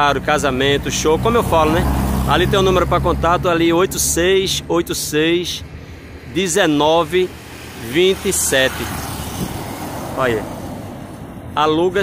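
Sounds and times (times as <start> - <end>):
man speaking: 0.0 - 9.0, 10.1 - 10.6, 11.6 - 12.0
low rumble of street traffic: 0.0 - 12.0.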